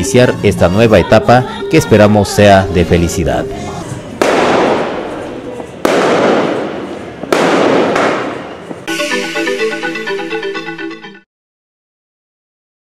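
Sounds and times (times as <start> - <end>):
fireworks bursting: 4.0 - 9.7
news theme music: 8.9 - 11.3.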